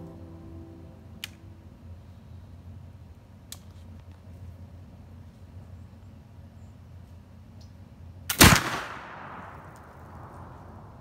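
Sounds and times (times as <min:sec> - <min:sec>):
flintlock rifle shot: 0:08.3 - 0:10.5.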